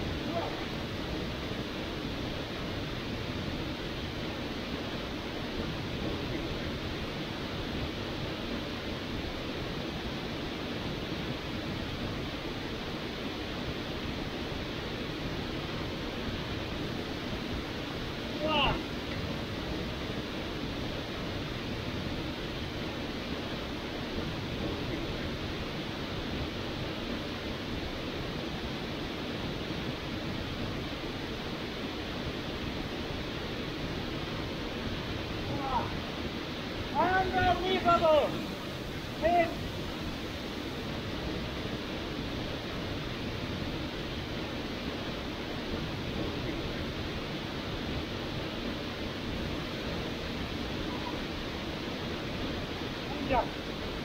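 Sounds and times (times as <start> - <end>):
waterfall rushing: 0.0 - 54.0.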